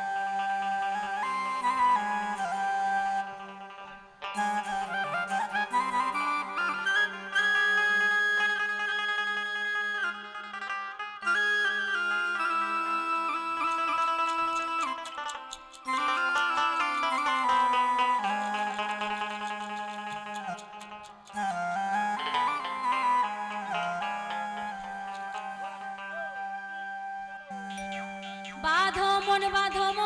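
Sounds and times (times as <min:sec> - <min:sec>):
held melody notes: 0:00.0 - 0:30.0
plucked strings: 0:03.6 - 0:26.3.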